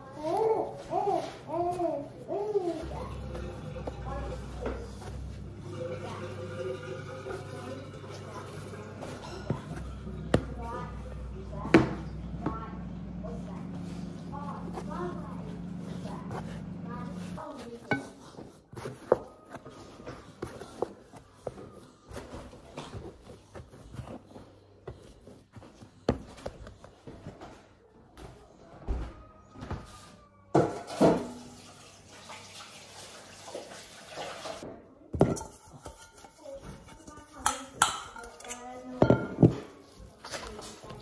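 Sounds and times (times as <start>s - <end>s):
steady low hum: 9.8s - 17.5s.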